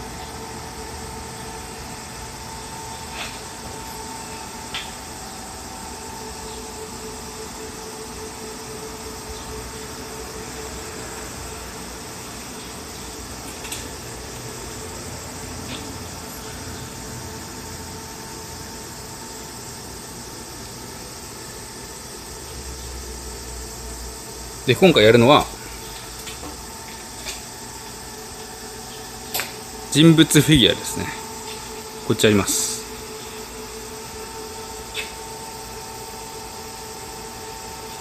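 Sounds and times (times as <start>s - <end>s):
machinery hum and hiss: 0.0s - 38.0s.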